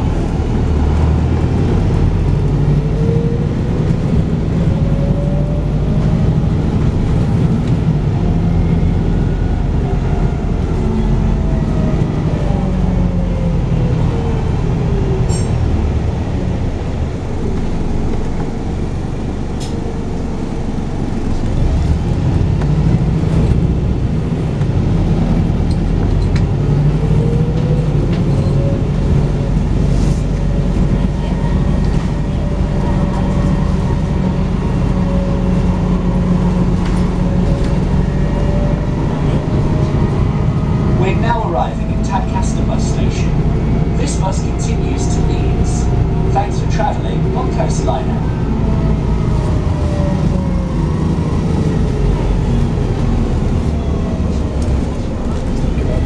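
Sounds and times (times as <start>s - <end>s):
bus diesel engine drone: 0.0s - 56.0s.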